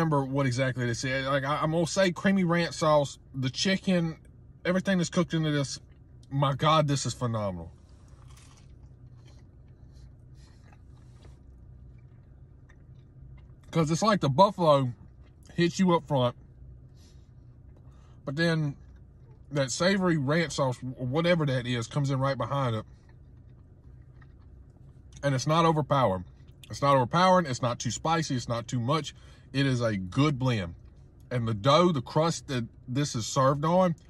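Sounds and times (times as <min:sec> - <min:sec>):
low steady hum: 0:00.0 - 0:34.0
man chewing crunchy pizza: 0:05.8 - 0:19.6, 0:22.6 - 0:25.5.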